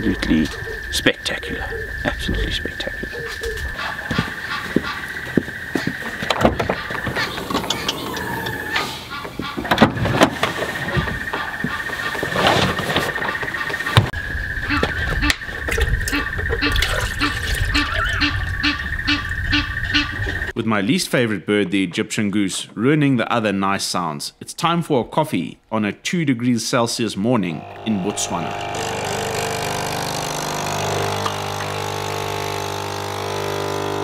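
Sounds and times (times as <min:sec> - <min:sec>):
birdsong: 0:00.0 - 0:09.7, 0:13.2 - 0:20.6
geese honking: 0:02.9 - 0:09.8, 0:16.1 - 0:20.5
steady high-pitched tone: 0:27.4 - 0:32.2.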